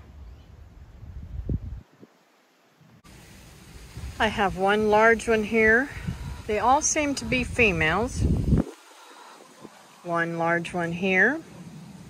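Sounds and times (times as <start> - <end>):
wind rumble on microphone: 0.0 - 2.2, 3.7 - 9.8
faint hiss: 0.0 - 12.0
microphone handling noise: 7.3 - 8.8.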